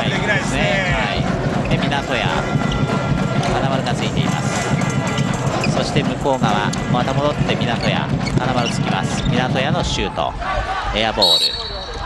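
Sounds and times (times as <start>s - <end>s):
arena crowd noise: 0.0s - 12.0s
commentator speaking: 3.4s - 4.7s.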